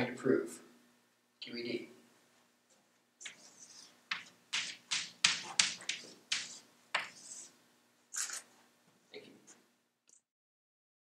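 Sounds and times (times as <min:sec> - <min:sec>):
chalk tapping and scraping on blackboard: 0:03.2 - 0:07.6.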